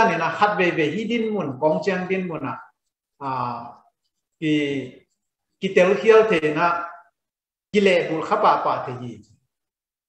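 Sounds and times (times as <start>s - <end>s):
man speaking: 0.0s - 9.6s.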